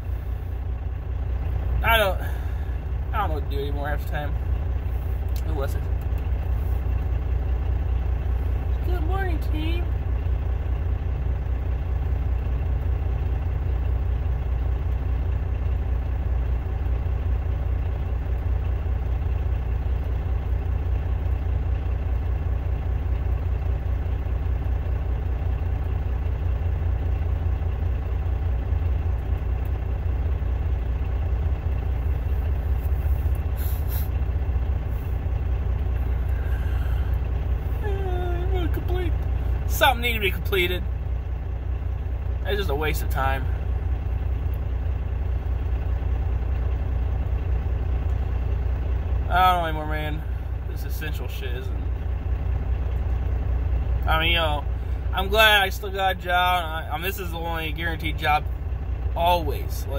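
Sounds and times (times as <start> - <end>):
diesel truck engine idling: 0.0 - 59.9.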